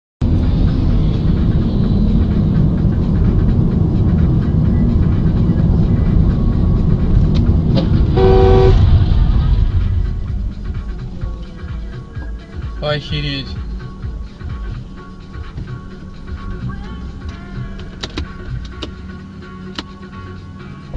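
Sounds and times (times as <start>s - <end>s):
car road and engine rumble: 0.2s - 20.9s
car horn: 7.9s - 9.0s.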